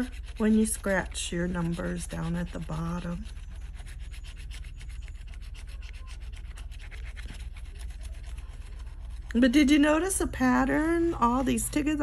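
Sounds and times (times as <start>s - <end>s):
scratching a scratch-off ticket: 0.0s - 12.0s.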